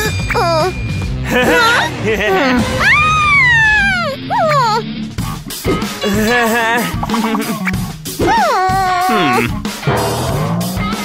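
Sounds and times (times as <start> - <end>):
cartoon girl crying: 1.4 - 4.9, 8.2 - 9.5
cartoon girl wailing: 2.7 - 4.8, 8.2 - 9.4.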